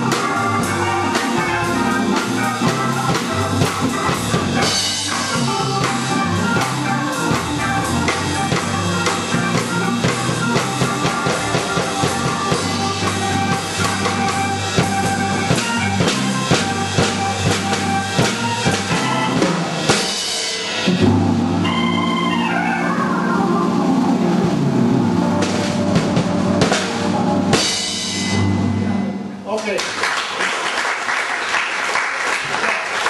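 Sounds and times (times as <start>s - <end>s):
steady drum beat: 0.0s - 21.8s, 24.1s - 28.8s
organ playing funky groove: 0.0s - 29.4s.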